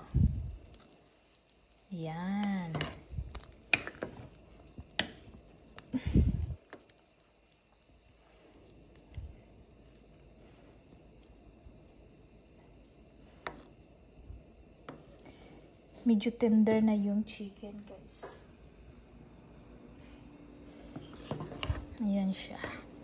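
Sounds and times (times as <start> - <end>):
ladle stirring simmering soup: 0.6 - 16.0, 20.0 - 23.0.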